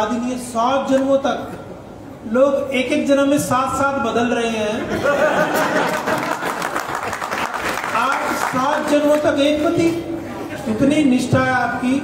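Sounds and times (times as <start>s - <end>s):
audience applauding: 5.7s - 9.2s.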